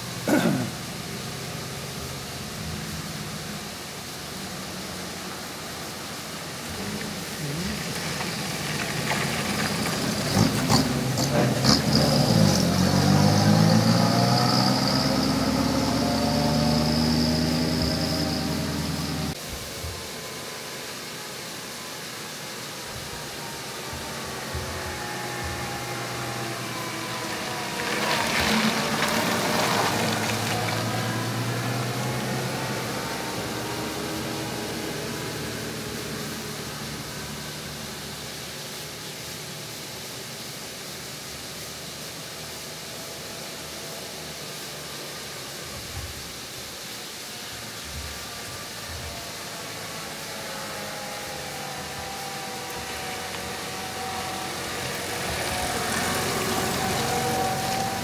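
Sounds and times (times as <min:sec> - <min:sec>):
rally car engines passing: 0:00.0 - 0:58.0.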